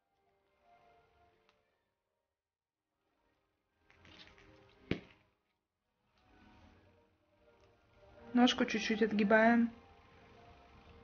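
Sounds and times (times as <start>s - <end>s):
wire rustling: 3.8s - 5.6s.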